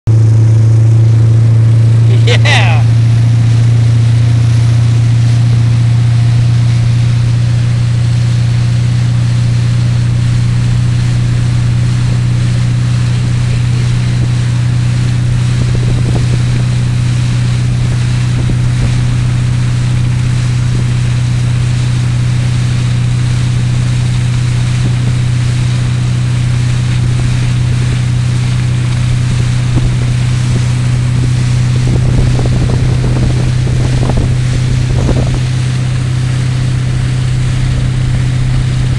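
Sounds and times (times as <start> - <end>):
motorboat engine droning: 0.1 - 38.9
water spray: 1.1 - 38.9
wind on microphone: 4.7 - 38.9.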